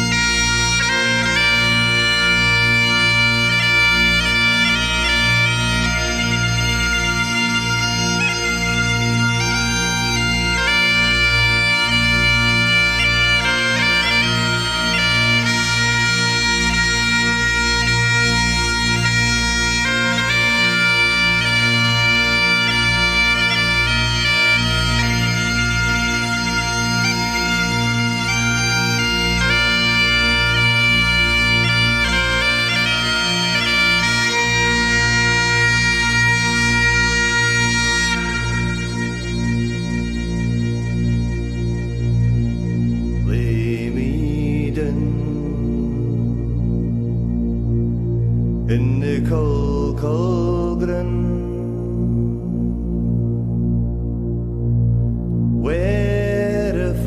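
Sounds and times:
bagpipes playing: 0.0 - 43.5.

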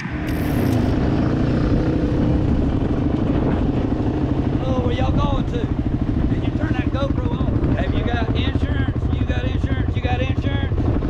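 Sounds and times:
atv engine running: 0.0 - 11.0.

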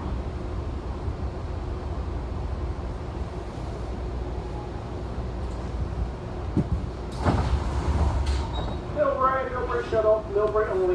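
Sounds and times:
train rumble: 0.0 - 10.9
public address voice: 9.0 - 10.9.

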